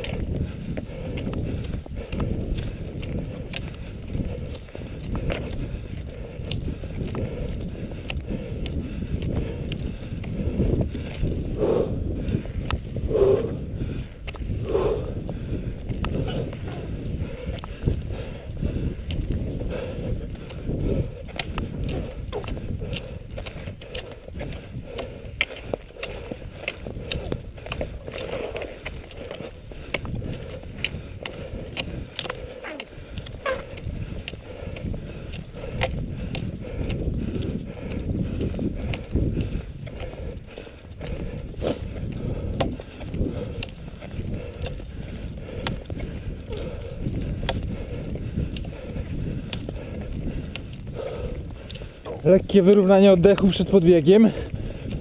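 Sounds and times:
wind rumble on microphone: 0:00.0 - 0:55.0
ski poles clicking: 0:21.3 - 0:36.5.

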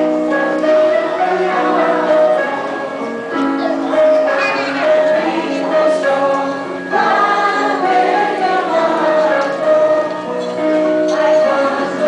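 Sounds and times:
group of voices singing: 0:00.6 - 0:03.0, 0:03.6 - 0:12.0.

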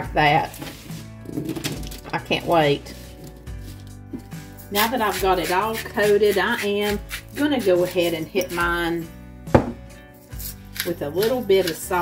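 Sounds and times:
quiet background music: 0:00.0 - 0:12.0
sharp knock: 0:09.6 - 0:09.8.

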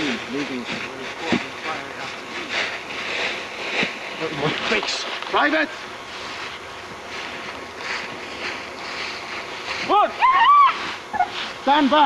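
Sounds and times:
rustling through dry leaves: 0:00.0 - 0:12.0.

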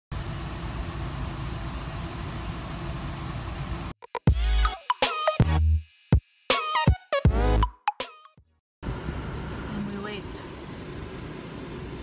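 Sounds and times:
air conditioning fan blowing: 0:00.1 - 0:03.9, 0:08.8 - 0:12.0.

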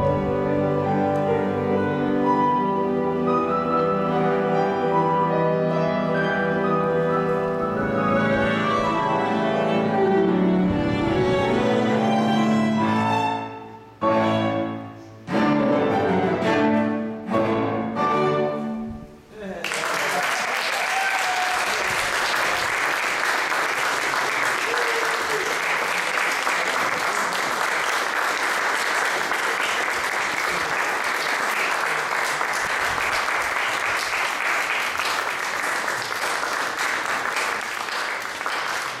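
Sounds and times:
audience applauding: 0:19.5 - 0:39.0.

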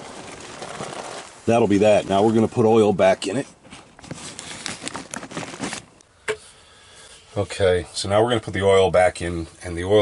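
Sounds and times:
rustling and crinkling: 0:00.0 - 0:06.1.

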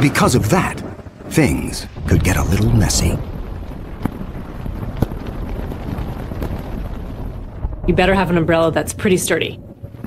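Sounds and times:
low rumbling wind: 0:00.0 - 0:10.0
sharp cracks: 0:01.9 - 0:08.0.

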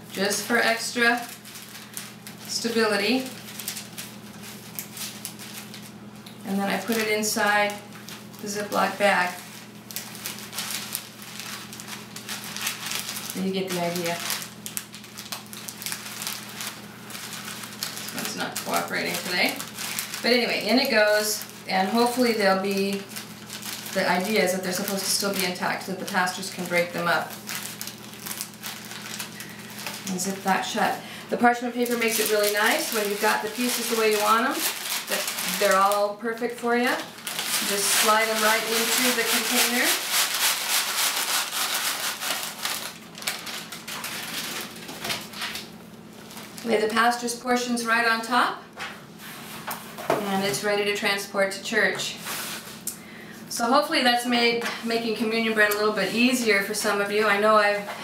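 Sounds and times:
paper towels rustling: 0:00.0 - 0:47.1, 0:48.8 - 0:50.5, 0:52.1 - 0:52.8
plastic bag crinkling: 0:00.0 - 0:47.1
crisp bread pieces clattering: 0:00.1 - 0:30.8, 0:31.5 - 0:36.1, 0:36.7 - 0:46.7.

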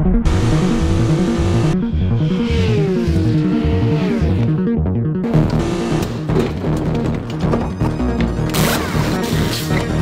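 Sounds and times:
cinematic music with heavy drums: 0:00.0 - 0:10.0.

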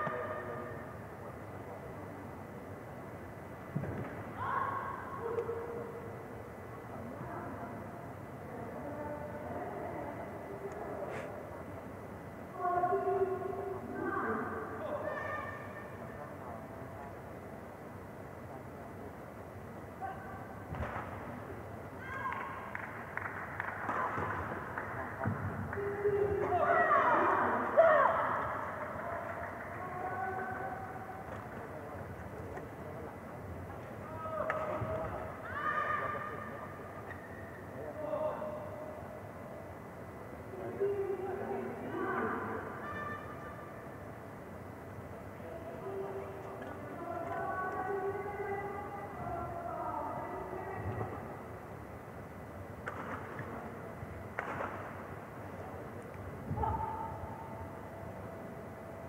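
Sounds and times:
hall background noise: 0:00.0 - 0:59.0.

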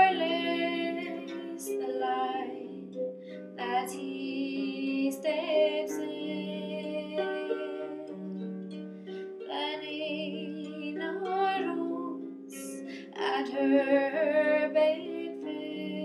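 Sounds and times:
woman singing: 0:00.0 - 0:03.0, 0:03.6 - 0:08.4, 0:09.5 - 0:16.0.

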